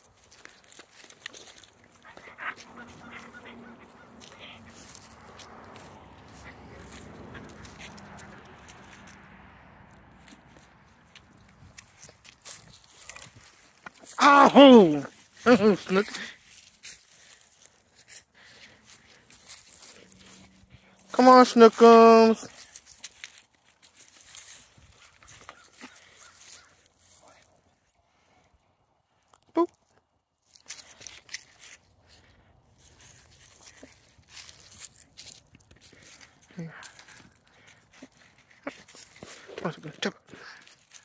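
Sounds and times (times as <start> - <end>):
rustling in dry leaves: 0.0 - 28.3, 30.4 - 41.0
dog gnawing wooden stick: 0.1 - 14.2.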